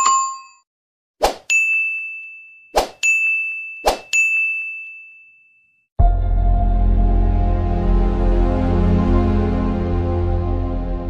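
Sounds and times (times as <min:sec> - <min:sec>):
bell ding: 0:00.0 - 0:00.6, 0:01.5 - 0:05.8
short swish: 0:02.8 - 0:03.0.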